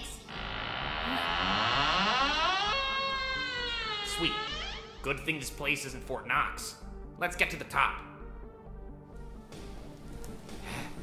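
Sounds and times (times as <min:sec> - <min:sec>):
door creaking open: 0:00.0 - 0:05.2
low pulsing music: 0:00.0 - 0:11.0.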